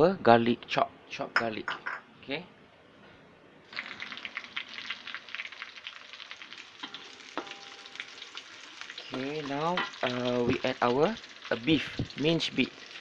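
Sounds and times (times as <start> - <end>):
garlic sizzling in hot oil: 3.7 - 13.0.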